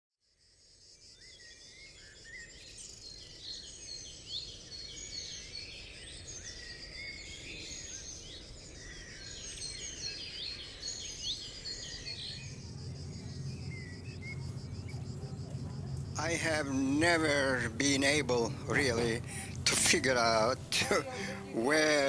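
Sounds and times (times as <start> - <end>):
insect drone: 0.2 - 22.0
birds chirping and whistling: 1.2 - 22.0.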